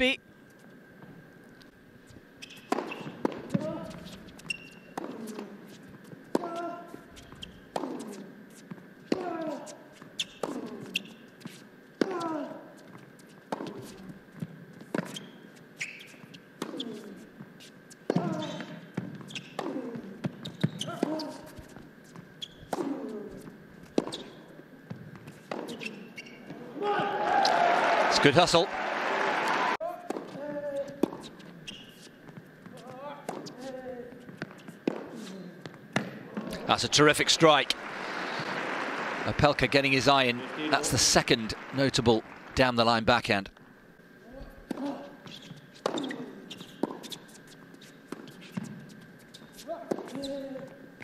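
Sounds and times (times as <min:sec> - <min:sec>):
tennis ball bouncing: 0:02.5 - 0:05.6, 0:07.3 - 0:09.4, 0:13.5 - 0:15.2, 0:22.7 - 0:26.2, 0:30.0 - 0:31.4, 0:32.0 - 0:36.6, 0:44.6 - 0:47.2, 0:47.8 - 0:50.2
racket striking tennis ball: 0:07.7 - 0:08.2, 0:30.0 - 0:31.4
crowd cheering and applauding: 0:26.9 - 0:29.8, 0:36.7 - 0:43.0.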